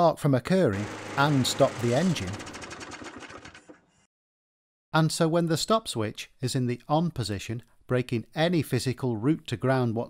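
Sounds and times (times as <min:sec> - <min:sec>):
lawnmower engine winding down: 0:00.7 - 0:03.9.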